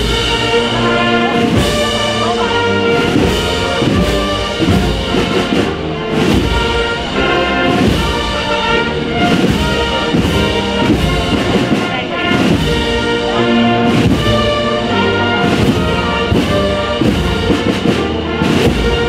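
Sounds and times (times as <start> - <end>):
brass and wind band playing: 0.0 - 19.0.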